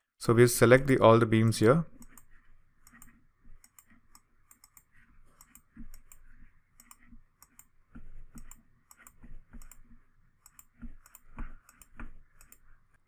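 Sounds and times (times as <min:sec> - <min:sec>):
computer mouse button clicking: 0:02.0 - 0:06.2, 0:06.8 - 0:07.7, 0:08.3 - 0:09.8, 0:10.4 - 0:12.6.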